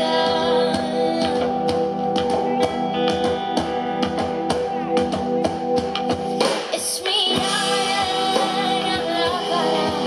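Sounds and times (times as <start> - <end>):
woman singing: 0.0 - 1.9, 6.7 - 10.0.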